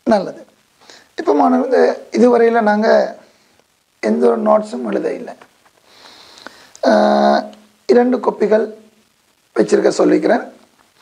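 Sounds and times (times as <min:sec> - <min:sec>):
man speaking: 0:00.0 - 0:00.6, 0:01.2 - 0:03.3, 0:04.0 - 0:05.5, 0:06.8 - 0:08.9, 0:09.5 - 0:10.6
breath intake: 0:05.8 - 0:06.8.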